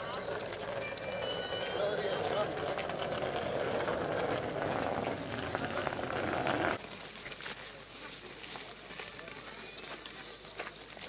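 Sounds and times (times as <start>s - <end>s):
road noise rumble: 1.5s - 6.8s.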